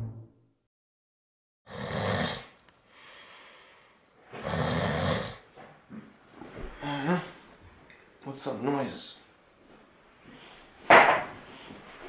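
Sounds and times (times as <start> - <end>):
man snoring: 1.7 - 2.6, 4.4 - 5.4
soft breath: 2.9 - 4.1.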